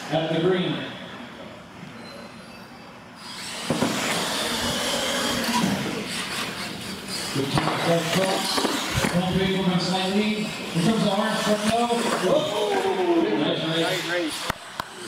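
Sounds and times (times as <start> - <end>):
radio-controlled truck motors racing: 3.2 - 15.0.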